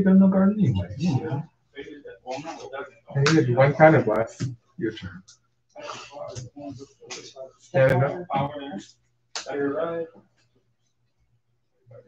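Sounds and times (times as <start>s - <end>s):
person speaking: 0.0s - 1.4s.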